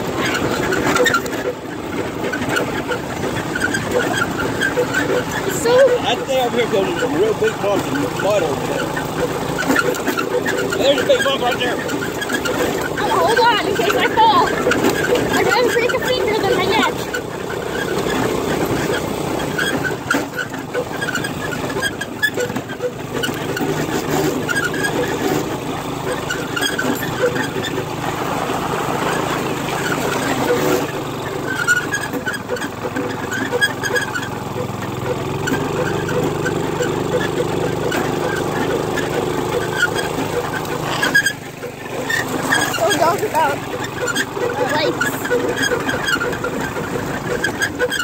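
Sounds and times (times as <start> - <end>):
go-kart engine running: 0.0 - 48.0.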